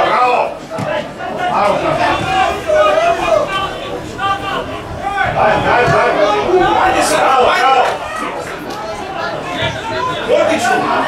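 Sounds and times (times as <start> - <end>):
distant voices calling out: 0.0 - 11.0.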